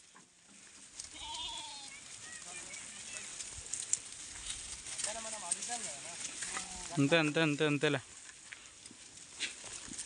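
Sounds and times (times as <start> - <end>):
faint rustling of browsing: 0.0 - 10.0
sheep bleating: 1.1 - 2.1.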